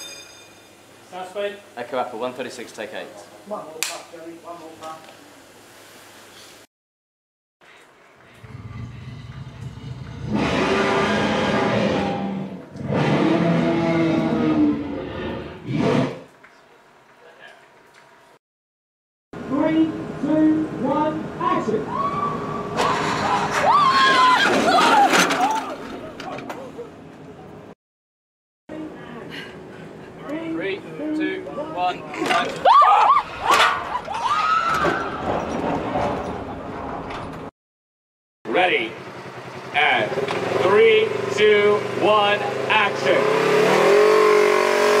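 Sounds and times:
sharp metal clanks: 0:00.0 - 0:00.8
buggy engine accelerating: 0:08.3 - 0:16.1, 0:38.9 - 0:45.0
people yelling and screaming: 0:21.8 - 0:26.8, 0:32.2 - 0:35.3
people shouting: 0:32.6 - 0:35.0.

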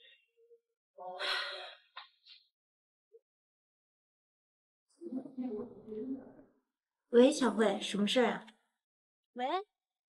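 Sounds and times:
woman sighing: 0:01.2 - 0:01.7.

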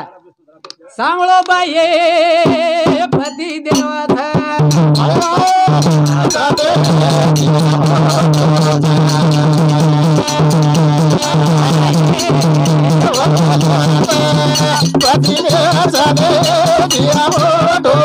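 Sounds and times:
person singing: 0:01.0 - 0:18.0
dholak drum: 0:01.2 - 0:18.0.

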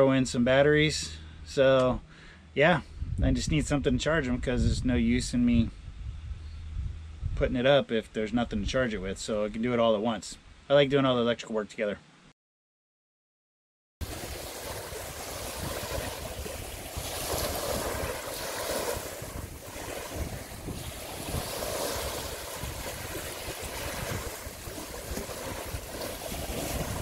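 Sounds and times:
wind buffeting microphone: 0:02.9 - 0:07.6, 0:14.0 - 0:27.0.

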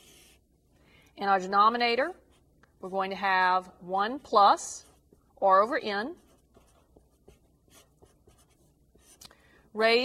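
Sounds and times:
marker writing on paper: 0:00.0 - 0:00.4, 0:06.2 - 0:09.2.

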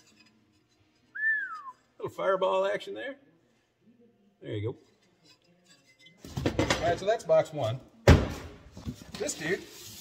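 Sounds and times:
man whistling: 0:01.2 - 0:01.8.

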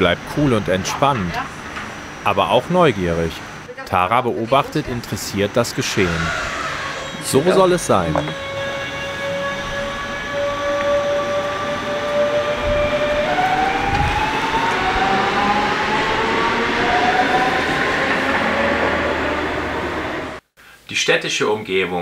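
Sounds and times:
passenger train rumble: 0:00.0 - 0:03.7, 0:04.4 - 0:20.4
train whines rising in pitch: 0:04.9 - 0:20.4.

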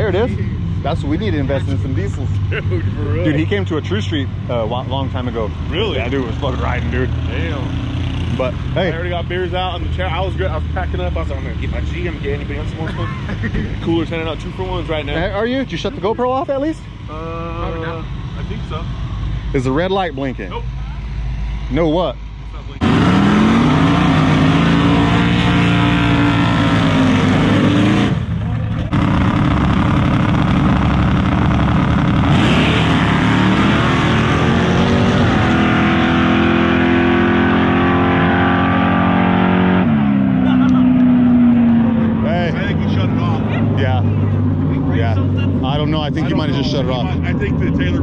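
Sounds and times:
race car engines revving: 0:00.0 - 0:48.0.

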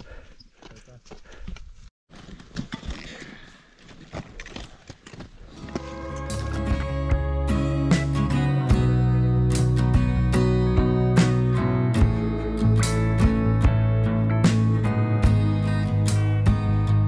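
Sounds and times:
footsteps crunching on snow and rock: 0:00.1 - 0:06.9
acoustic guitar music: 0:05.7 - 0:17.0.

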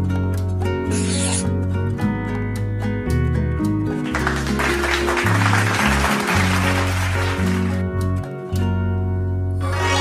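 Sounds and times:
background music with bass line: 0:00.0 - 0:10.0
pen scribble sound effect: 0:00.9 - 0:01.5.

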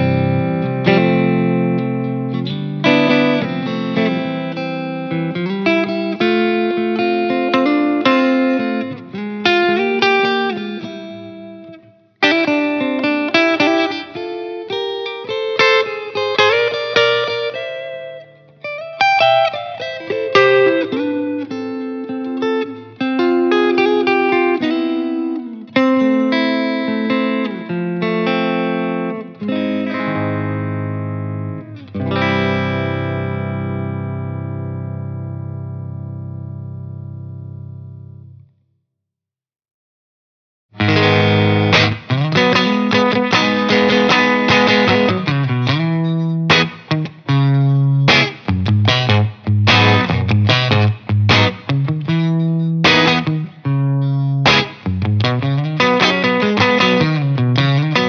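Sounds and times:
broken-up electric guitar passage: 0:00.0 - 0:38.4, 0:40.8 - 0:58.0
clean electric guitar playing: 0:00.0 - 0:38.5, 0:40.8 - 0:58.0.

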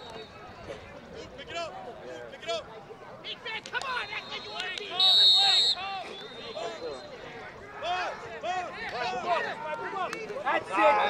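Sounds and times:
players and spectators shouting: 0:00.0 - 0:11.0
referee's whistle blast: 0:03.8 - 0:07.2.

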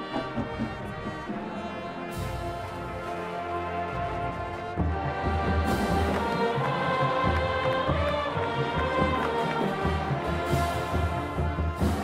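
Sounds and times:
brass sustained chords: 0:00.0 - 0:12.0.

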